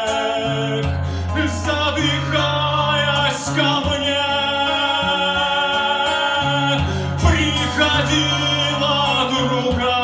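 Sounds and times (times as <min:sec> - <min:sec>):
acoustic guitar: 0:00.0 - 0:10.0
man singing: 0:00.0 - 0:10.0.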